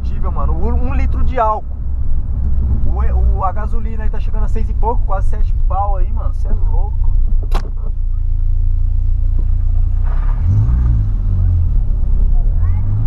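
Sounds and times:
car engine and road drone: 0.0 - 13.0.

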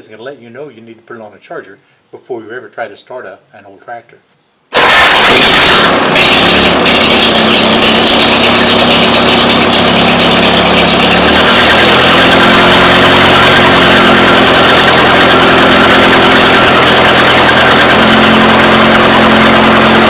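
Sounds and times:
tractor engine running: 4.8 - 20.0.

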